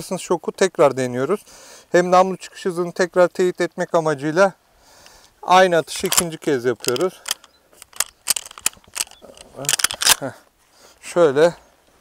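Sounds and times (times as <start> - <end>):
shotgun action clicking: 6.0 - 10.2.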